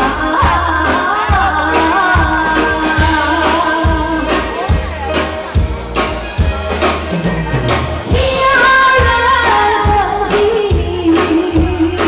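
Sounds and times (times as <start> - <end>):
woman singing: 0.0 - 4.6, 8.0 - 12.0
live band playing pop: 0.0 - 12.0.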